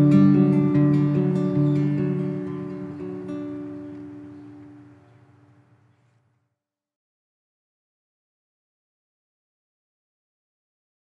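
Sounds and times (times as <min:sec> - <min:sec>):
acoustic guitar chord ringing: 0:00.0 - 0:06.0.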